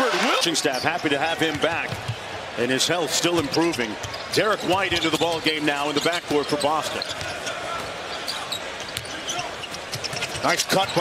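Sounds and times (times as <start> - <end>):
arena crowd noise: 0.0 - 11.0
basketball bouncing on court: 1.3 - 2.3, 3.3 - 5.5, 7.0 - 7.9, 8.8 - 11.0.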